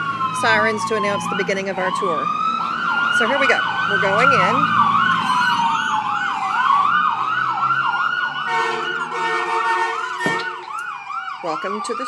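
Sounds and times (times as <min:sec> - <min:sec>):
ambulance siren: 0:00.0 - 0:12.0
steady pitched horn blast: 0:08.5 - 0:10.7
knock: 0:10.2 - 0:10.5.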